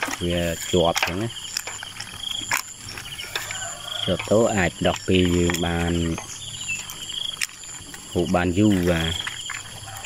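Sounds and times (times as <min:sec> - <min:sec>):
person speaking: 0:08.1 - 0:09.3.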